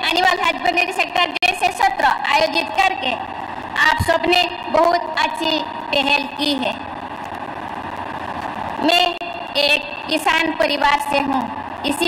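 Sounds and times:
woman speaking: 0.0 - 3.2, 3.8 - 6.8, 8.8 - 12.0
crowded hall background noise: 0.0 - 12.0.

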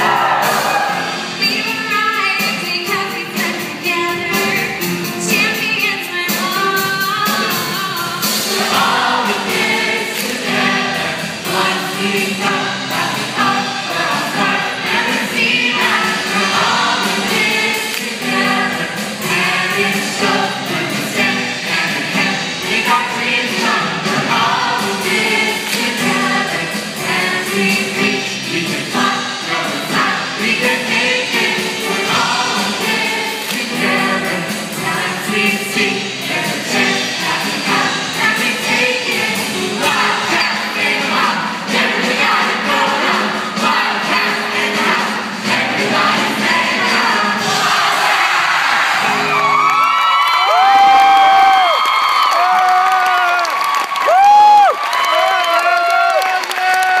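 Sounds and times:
audience cheering and screaming: 0.0 - 1.3, 48.0 - 57.0
chorus singing pop number: 0.0 - 1.8, 6.3 - 49.7.

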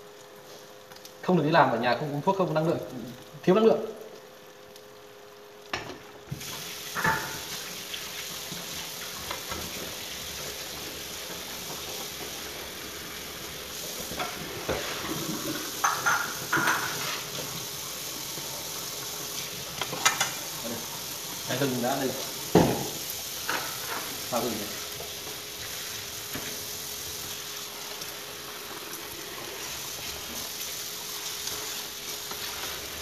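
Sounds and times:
eggs sizzling in a frying pan: 0.0 - 33.0.

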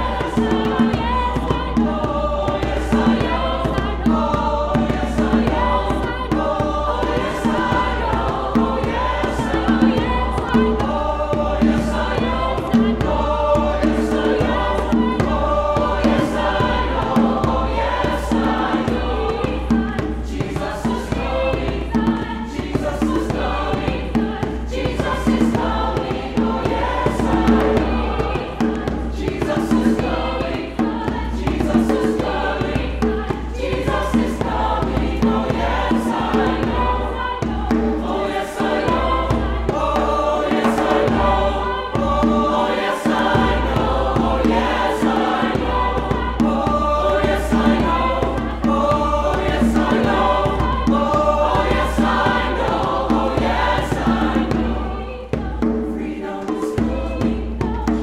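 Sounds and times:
hand drum beat: 0.0 - 58.0
mixed choir singing: 0.0 - 58.0.

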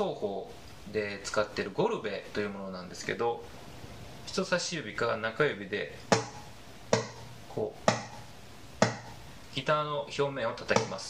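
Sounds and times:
fingertip knocking guitar body: 10.7 - 11.0.

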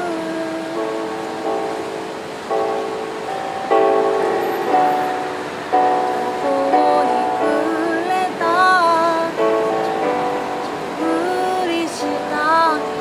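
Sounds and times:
electronic keyboard chords: 0.0 - 13.0.

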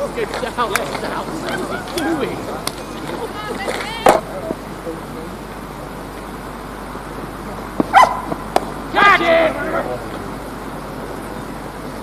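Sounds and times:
cricket bat striking ball: 7.8 - 8.8
person shouting: 8.9 - 9.9.

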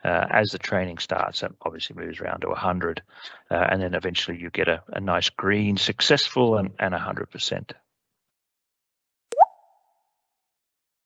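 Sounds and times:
pop sound effect: 9.3 - 9.7.

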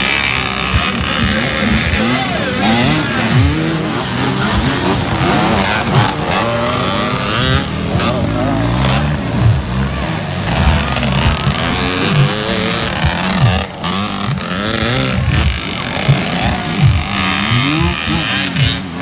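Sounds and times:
dirt bike engines revving: 0.0 - 19.0.

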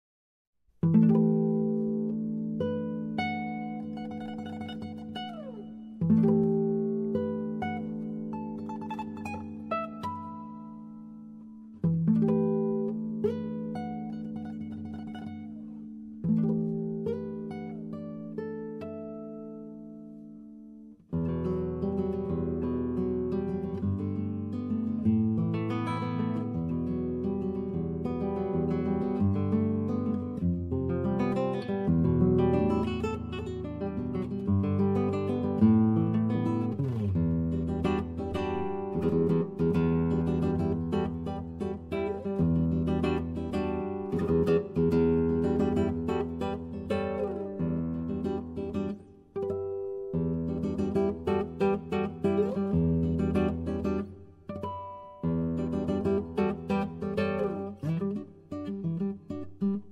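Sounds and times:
acoustic guitar chords: 0.7 - 59.9.

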